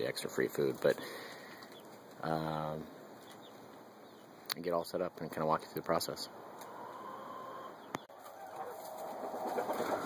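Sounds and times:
chickens clucking: 6.0s - 10.0s.

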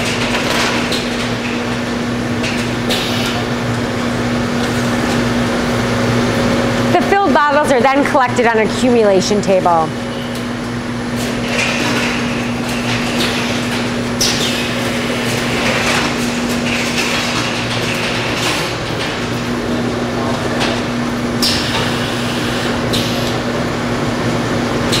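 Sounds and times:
machine hum: 0.0s - 25.0s.

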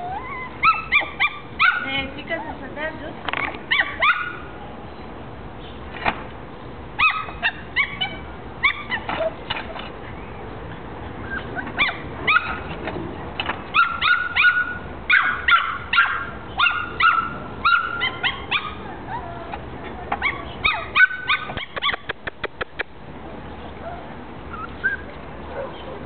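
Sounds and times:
puppy yapping and yelping: 0.0s - 1.9s, 3.3s - 4.6s, 7.0s - 9.9s, 11.1s - 12.8s, 13.7s - 22.9s, 23.8s - 26.0s
sharp clicks: 21.6s - 22.9s.

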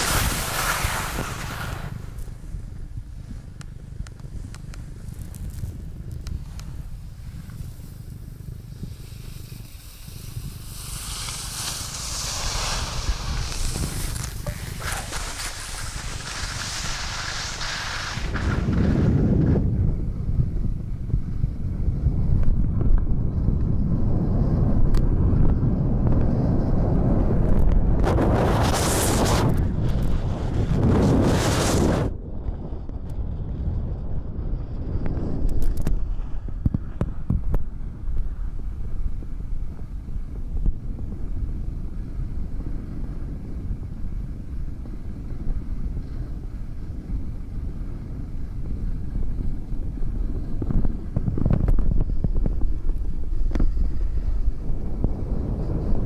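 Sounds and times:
skis scraping on hard snow: 0.0s - 20.7s, 27.2s - 32.1s, 35.0s - 56.0s
wind buffeting microphone: 0.0s - 56.0s.

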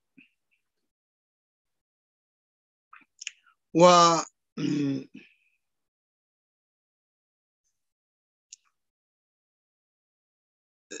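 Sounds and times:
man speaking: 3.8s - 5.1s
man clearing his throat: 4.6s - 5.1s.

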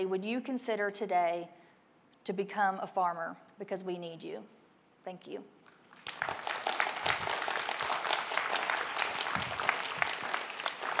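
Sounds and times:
audience applauding: 5.9s - 11.0s.

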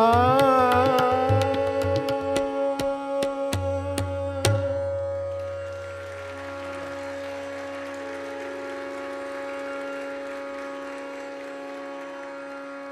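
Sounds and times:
tanpura drone: 0.0s - 12.9s.

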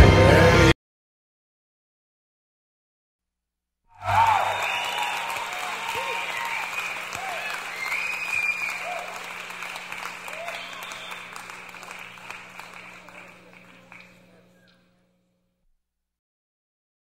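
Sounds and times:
people shouting: 4.0s - 12.1s
audience applause: 4.0s - 14.8s.

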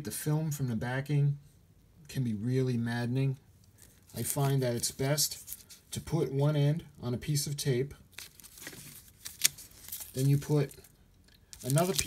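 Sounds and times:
film and tape crinkling: 3.6s - 6.0s, 8.1s - 12.0s.

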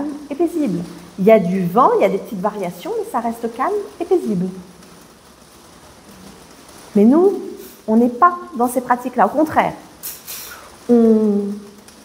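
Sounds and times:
woman talking: 0.0s - 4.7s, 6.9s - 9.9s, 10.9s - 11.7s
faint room tone hiss: 0.0s - 12.0s.

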